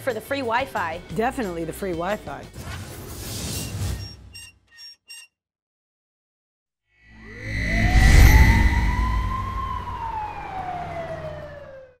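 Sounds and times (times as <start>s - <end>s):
siren-like wail: 7.1s - 12.0s
low rumble: 7.2s - 11.6s.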